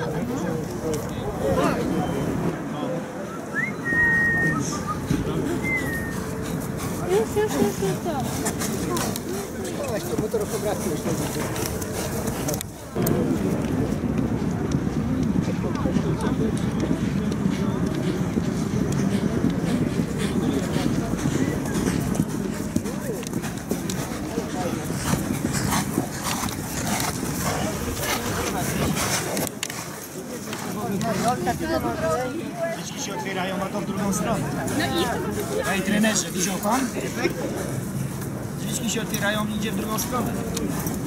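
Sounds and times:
chatter of people: 0.0 - 41.0
people talking: 0.0 - 41.0
short high whistles: 3.3 - 5.0, 5.6 - 6.2
horse hooves clopping: 4.9 - 41.0.

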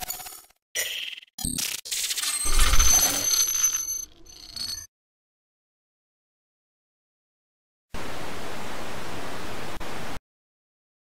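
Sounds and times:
glitchy electronic ringing: 0.0 - 4.9.

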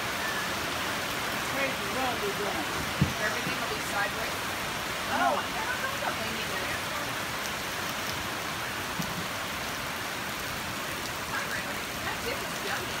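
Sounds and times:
heavy rain pouring: 0.0 - 13.0.

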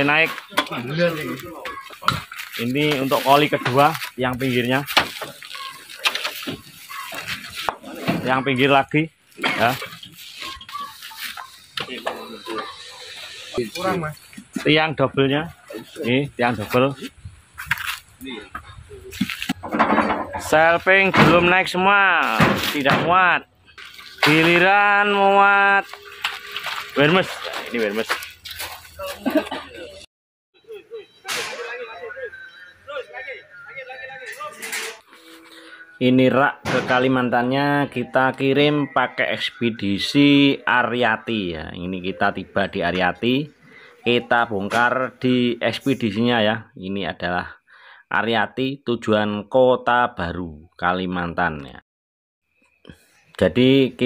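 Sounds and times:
plastic wrap rustling: 1.1 - 7.7, 25.8 - 29.1.

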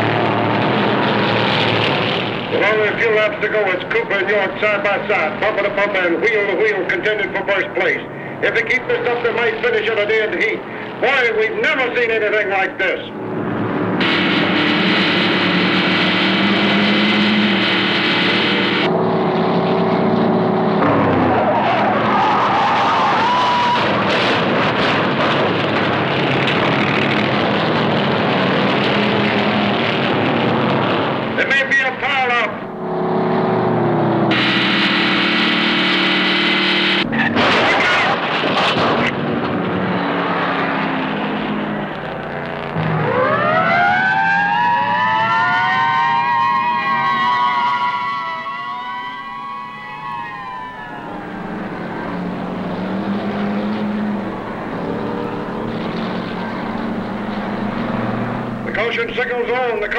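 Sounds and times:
fire engine siren wailing: 0.0 - 59.9
race car engines: 0.0 - 59.9.

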